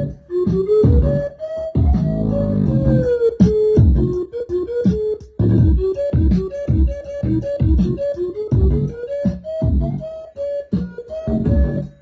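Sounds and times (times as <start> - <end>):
keyboard melody: 0.0 - 12.0
deep bass notes dropping in pitch: 0.9 - 3.2, 3.8 - 4.2
loud music over speakers: 1.8 - 4.2, 4.8 - 10.1, 10.7 - 12.0.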